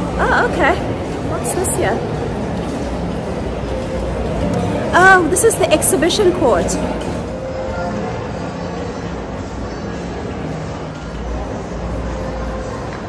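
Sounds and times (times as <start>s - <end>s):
crowd noise: 0.0s - 13.0s
faint background music: 0.0s - 13.0s.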